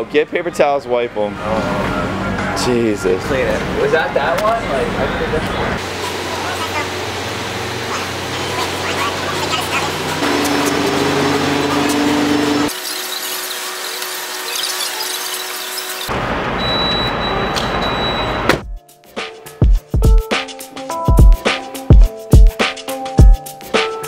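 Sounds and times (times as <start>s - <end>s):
steady hum at gas pump: 0.0s - 12.7s
loud music with heavy drum beat: 18.6s - 24.0s.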